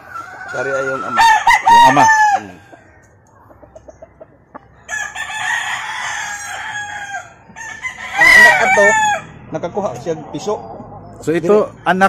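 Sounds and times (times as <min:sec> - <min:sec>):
rooster crowing: 0:00.0 - 0:03.0, 0:04.8 - 0:09.4.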